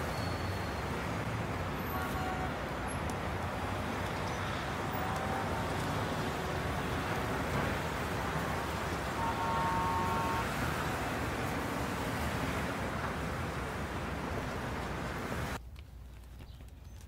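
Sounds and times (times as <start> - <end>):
passing vehicles rumble: 0.0 - 15.6.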